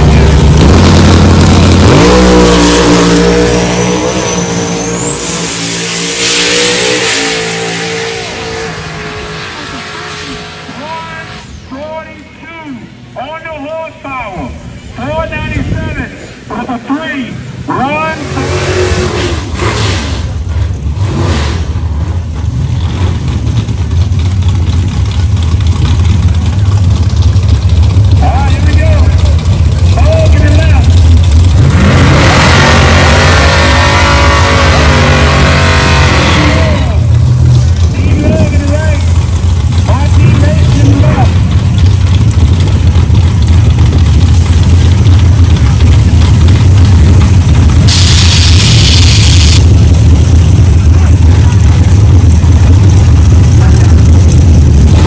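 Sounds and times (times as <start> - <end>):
hot rod engines rumbling: 0.0 - 55.0.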